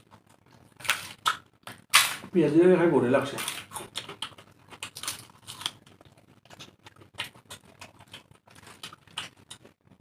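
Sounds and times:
wet chewing and mouth clicks: 0:03.4 - 0:10.0.

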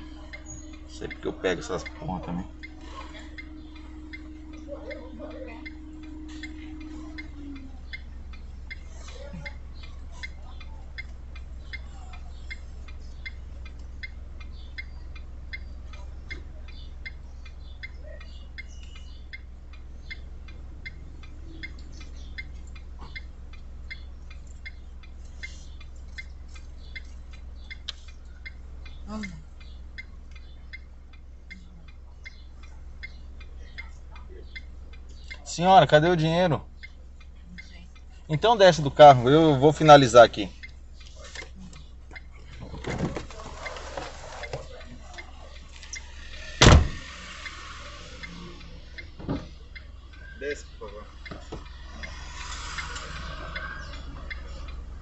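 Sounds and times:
car indicator ticking: 0:00.0 - 0:55.0
low cabin hum: 0:00.0 - 0:55.0.

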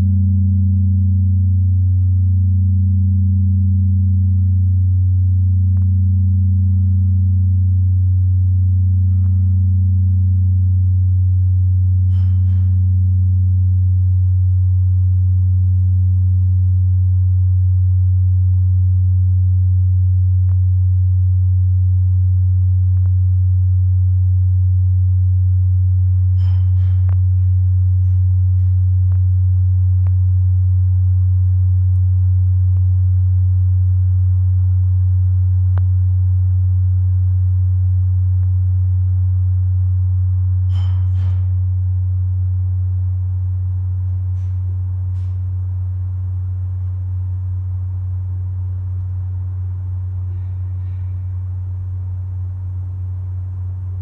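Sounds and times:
deep bell ringing: 0:00.0 - 0:17.2, 0:26.0 - 0:30.3, 0:40.5 - 0:52.2.

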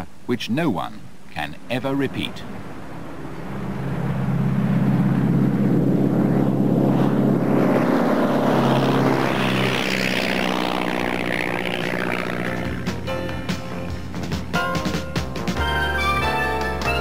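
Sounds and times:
light aircraft taking off: 0:01.4 - 0:17.0.

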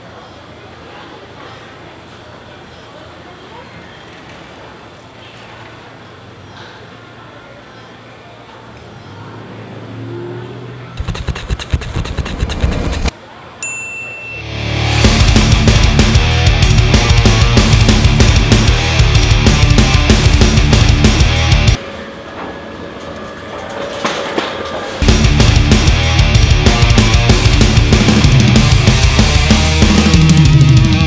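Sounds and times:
loud rapid uneven clatter: 0:11.0 - 0:13.1
wheels rolling on concrete: 0:22.4 - 0:25.1.

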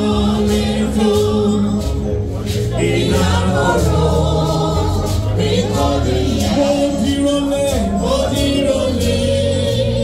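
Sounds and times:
choir singing gospel: 0:00.0 - 0:10.0
low bass accompaniment: 0:00.0 - 0:10.0.

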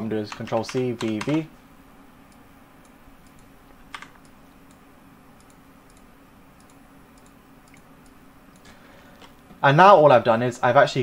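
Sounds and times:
faint low hum: 0:00.0 - 0:11.0
keyboard and mouse clicks: 0:00.3 - 0:01.4, 0:02.3 - 0:04.8, 0:05.4 - 0:09.4.

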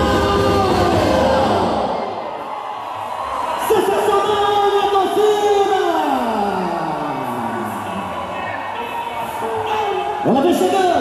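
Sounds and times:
dance music: 0:00.0 - 0:02.3.

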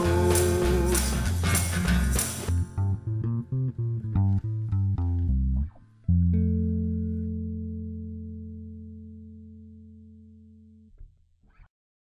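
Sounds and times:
drums and tambourine: 0:00.0 - 0:02.6
picked bass and guitar notes: 0:00.0 - 0:11.7.

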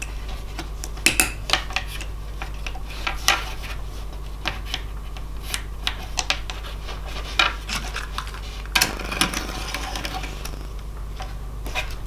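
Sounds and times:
steady low hum: 0:00.0 - 0:12.0
plastic scraping: 0:06.9 - 0:10.9.

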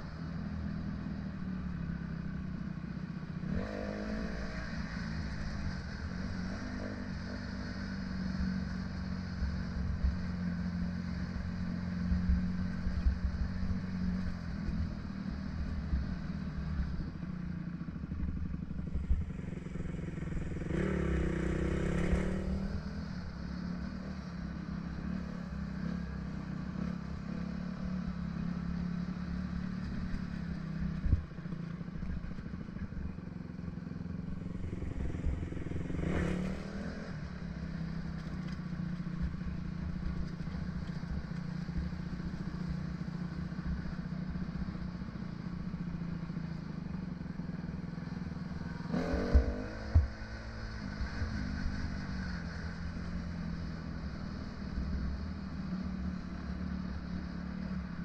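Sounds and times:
dirt bike engine running: 0:18.0 - 0:52.1.

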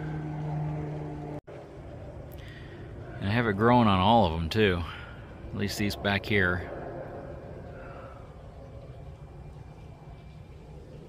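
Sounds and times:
motor hum: 0:00.0 - 0:05.6
faint steady hum: 0:00.0 - 0:11.0.

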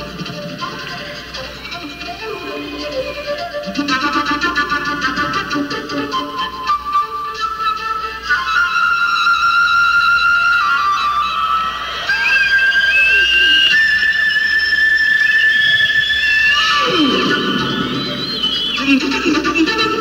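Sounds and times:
flute sustained notes: 0:00.0 - 0:20.0.

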